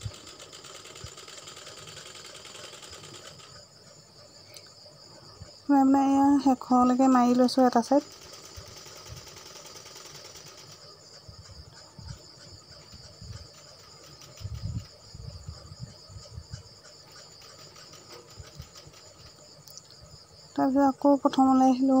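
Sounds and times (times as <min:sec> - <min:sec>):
insects chirring: 0:00.0 - 0:22.0.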